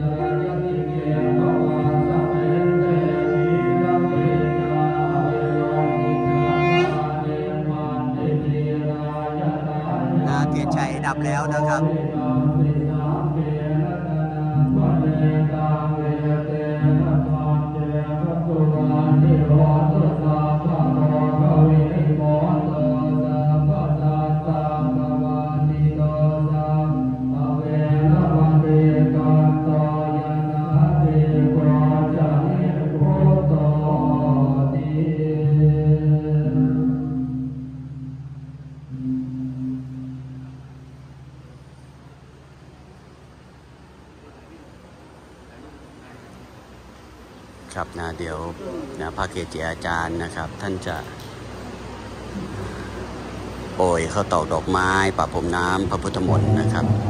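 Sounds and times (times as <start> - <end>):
monks chanting: 0.0 - 37.5, 52.3 - 57.0.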